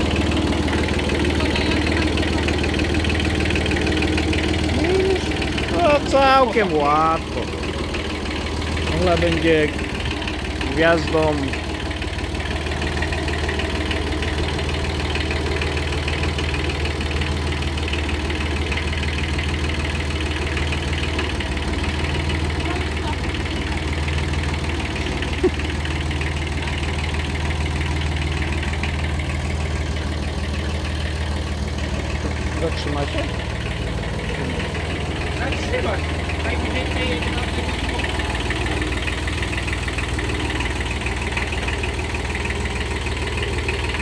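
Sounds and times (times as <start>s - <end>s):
tractor diesel engine running: 0.0s - 44.0s.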